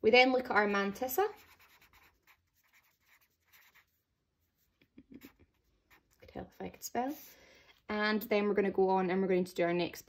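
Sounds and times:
marker writing on paper: 1.3 - 4.0.

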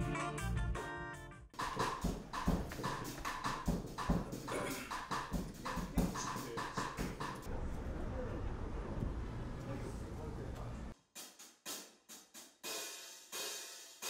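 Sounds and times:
music: 0.0 - 7.5, 11.1 - 14.0.

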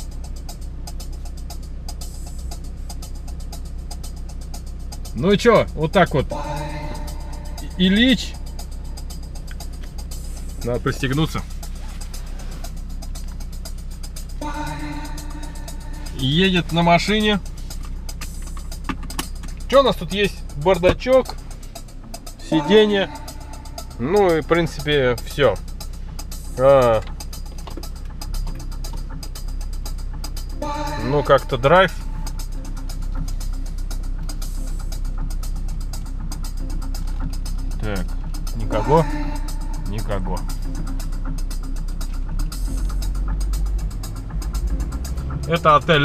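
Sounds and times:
dance music from car stereo: 0.0 - 46.0
idling engine hum: 0.0 - 46.0
vehicle driving rumble: 0.0 - 46.0.

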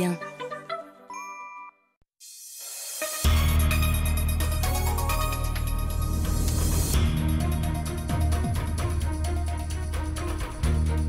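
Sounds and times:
jingle with bell-like chimes: 1.1 - 1.9.

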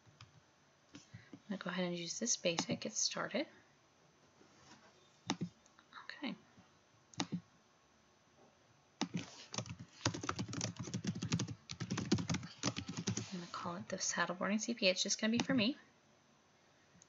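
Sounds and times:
typing on computer keyboard: 9.0 - 13.3.

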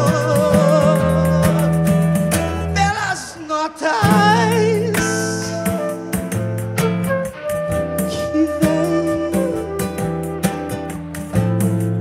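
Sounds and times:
flute: 0.0 - 11.9
acoustic guitar: 0.0 - 12.0.

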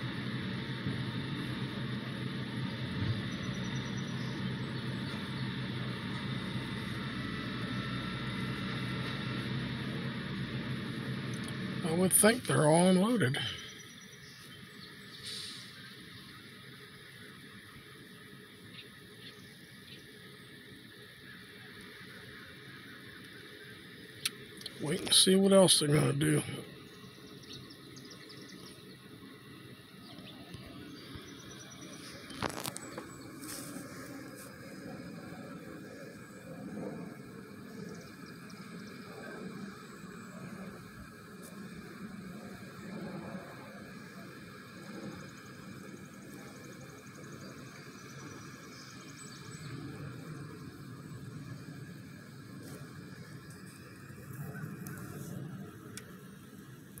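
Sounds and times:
faint outdoor background noise: 0.0 - 57.0.

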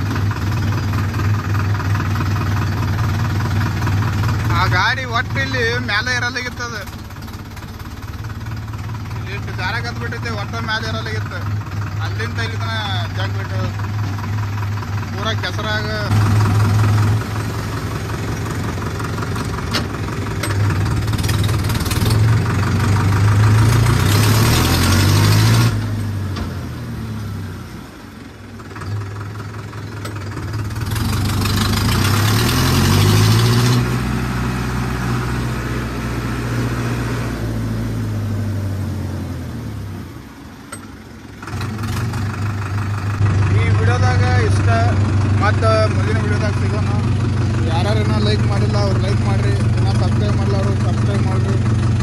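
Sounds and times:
tractor diesel engine revving: 0.0 - 52.0.

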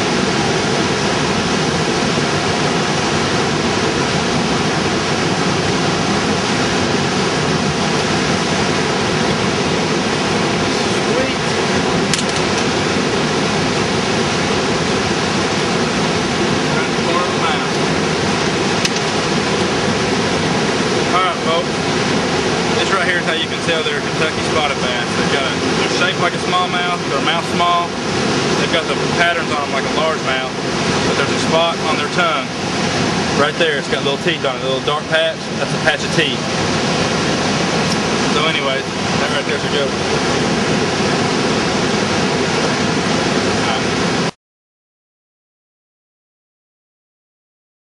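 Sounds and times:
wind: 0.0 - 44.3
rushing water: 0.0 - 44.4.

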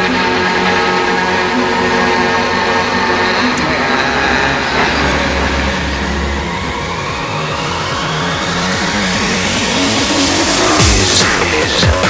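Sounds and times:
rising synth sweep: 0.0 - 12.0
deep bass note: 2.6 - 12.0.

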